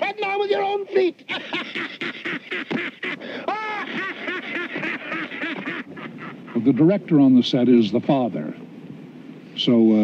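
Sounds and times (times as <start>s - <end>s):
old man cackling laugh: 1.3s - 6.8s.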